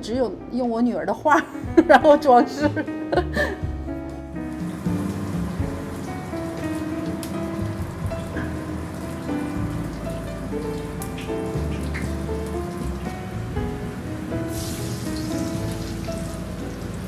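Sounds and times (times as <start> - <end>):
soft background music: 0.0 - 17.0
deep fryer oil sizzling: 3.6 - 17.0.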